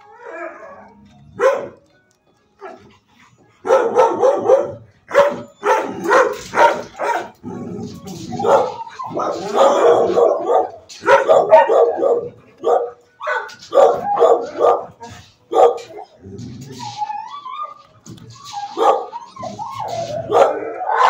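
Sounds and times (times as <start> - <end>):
dogs barking: 1.3 - 1.9, 2.6 - 21.0.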